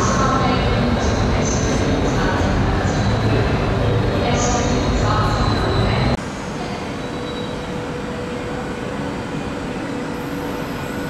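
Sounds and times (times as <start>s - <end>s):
train rumbling slowly: 0.0s - 11.0s.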